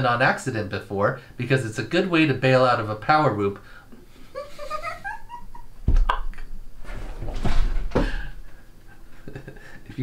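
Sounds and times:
man and woman laughing: 0:04.3 - 0:06.6, 0:08.9 - 0:09.9.

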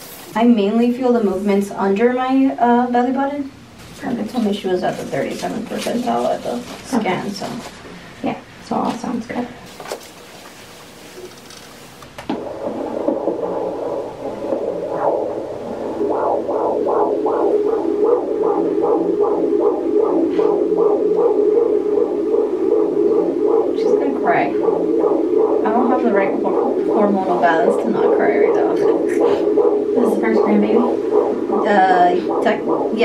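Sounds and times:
fast whooshing heartbeat pulse: 0:03.8 - 0:08.0, 0:12.2 - 0:33.0
person speaking: 0:25.6 - 0:33.0.

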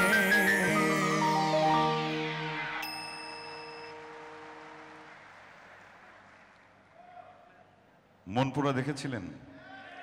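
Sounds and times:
high bell-like chime: 0:02.8 - 0:05.0.

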